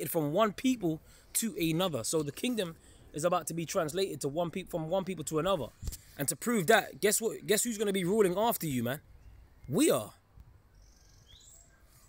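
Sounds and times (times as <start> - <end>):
faint bird chirps: 5.8 - 12.0.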